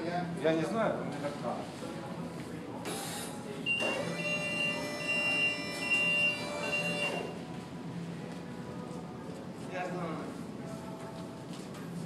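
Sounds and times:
electric lift whine: 0:02.9 - 0:07.4
high pulsing beep: 0:03.7 - 0:07.4.

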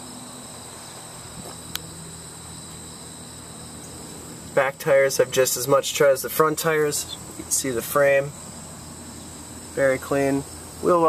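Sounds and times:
insect trilling: 0:00.0 - 0:11.0.

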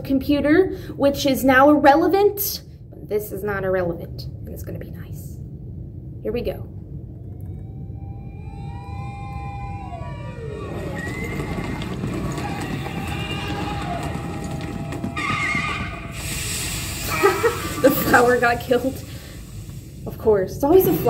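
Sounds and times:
low rumble: 0:03.6 - 0:21.0
wavering pitched tone: 0:07.0 - 0:11.7
hiss: 0:15.8 - 0:21.0
woman laughing: 0:17.0 - 0:18.4.

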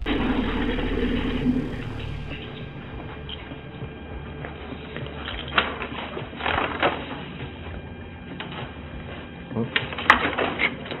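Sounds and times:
low room hum: 0:00.0 - 0:07.0.

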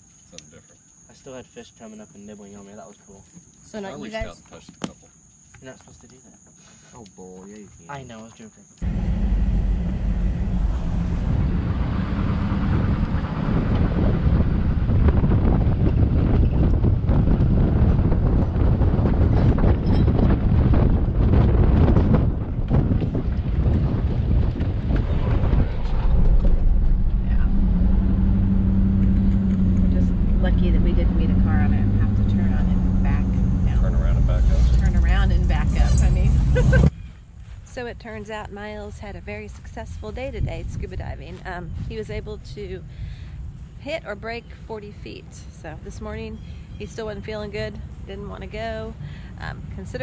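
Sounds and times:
car engine running: 0:08.8 - 0:36.9.

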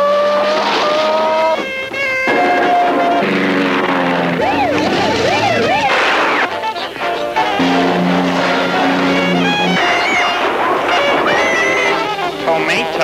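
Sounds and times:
siren wailing: 0:00.0 - 0:12.8
tyre squeals: 0:00.0 - 0:12.8
vehicle noise: 0:00.0 - 0:13.0.

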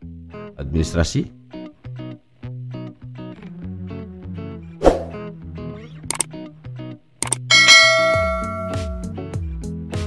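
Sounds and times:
guitar music: 0:01.4 - 0:09.4
sharp clicks: 0:06.1 - 0:06.3, 0:07.2 - 0:07.5
bright bell ding: 0:07.5 - 0:09.1.

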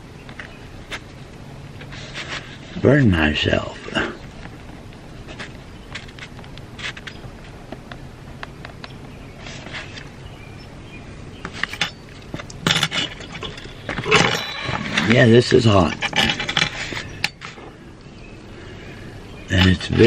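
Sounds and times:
low steady hum: 0:00.0 - 0:20.0
knocks and clatter of handled items: 0:11.4 - 0:17.7.

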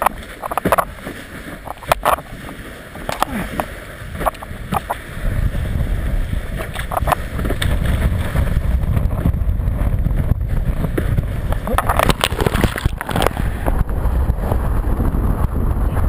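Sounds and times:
water slapping board: 0:00.0 - 0:05.4, 0:06.1 - 0:14.7
wind buffeting microphone: 0:00.0 - 0:16.0.

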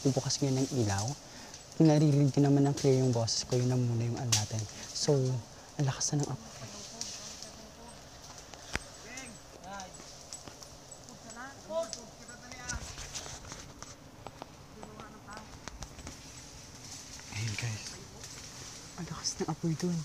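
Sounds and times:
steady high hiss: 0:00.0 - 0:20.0
distant people calling out: 0:04.4 - 0:12.8, 0:14.6 - 0:15.7.

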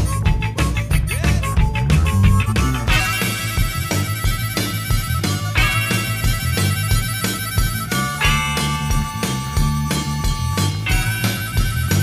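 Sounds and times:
instrumental rock and roll music: 0:00.0 - 0:12.0.

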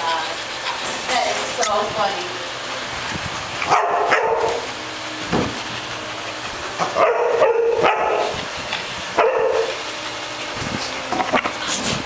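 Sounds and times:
dogs barking and yipping: 0:03.4 - 0:12.0.

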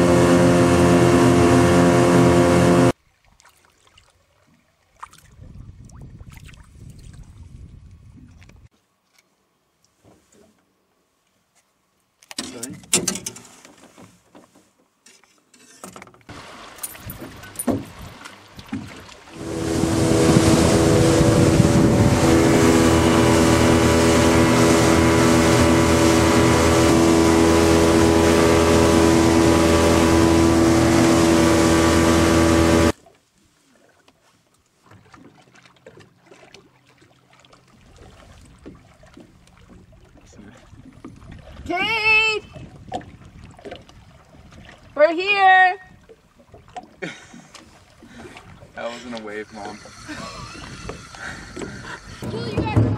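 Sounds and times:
outboard motor running: 0:00.0 - 0:03.0, 0:16.3 - 0:33.0, 0:34.9 - 0:45.2, 0:45.9 - 0:52.9
wind and water rush: 0:05.0 - 0:08.7, 0:16.3 - 0:33.0, 0:35.0 - 0:52.9.

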